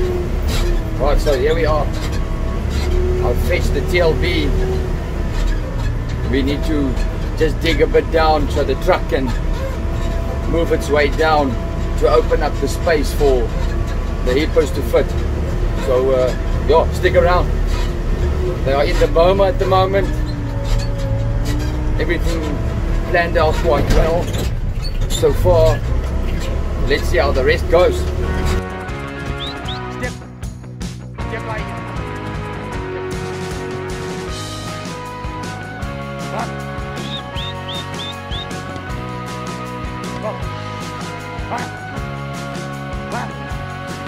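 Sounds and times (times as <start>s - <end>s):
diesel engine rumbling: 0.0s - 44.0s
background music with steady beat: 27.8s - 44.0s
short high chirps: 29.3s - 30.0s, 37.0s - 38.6s.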